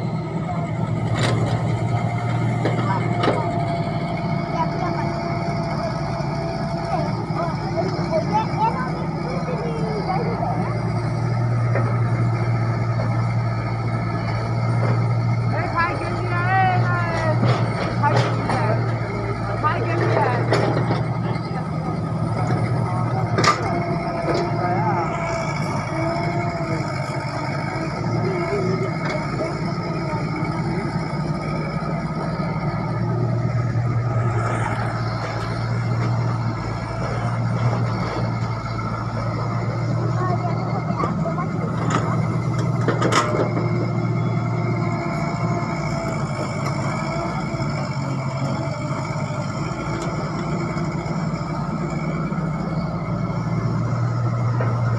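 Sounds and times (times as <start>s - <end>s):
excavator diesel engine humming: 0.0s - 54.9s.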